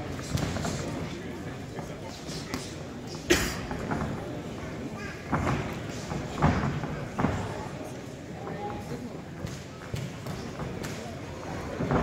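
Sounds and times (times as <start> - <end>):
indistinct voices in sports hall: 0.0 - 12.0.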